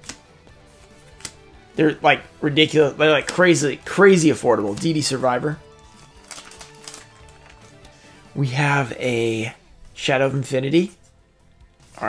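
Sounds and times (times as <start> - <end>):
trading cards tapping and rustling: 0.0 - 0.2, 0.8 - 1.5, 2.6 - 8.0
soft background music: 0.0 - 12.0.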